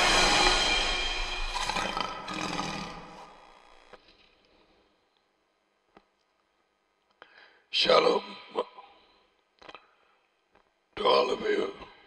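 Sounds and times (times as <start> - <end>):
intro music: 0.0 - 3.1
lion roar: 0.0 - 3.4.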